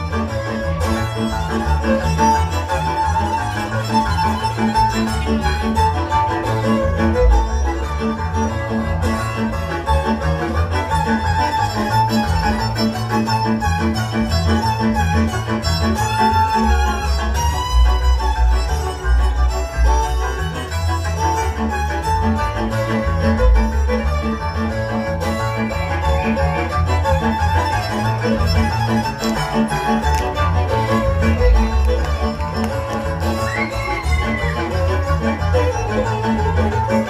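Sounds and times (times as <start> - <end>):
fiddle melody: 0.0 - 37.0
pulsing bass accompaniment: 0.0 - 37.0.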